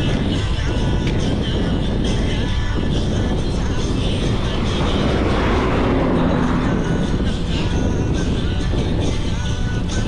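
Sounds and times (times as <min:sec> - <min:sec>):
wind buffeting microphone: 0:00.0 - 0:10.0
vehicle passing: 0:03.1 - 0:08.9.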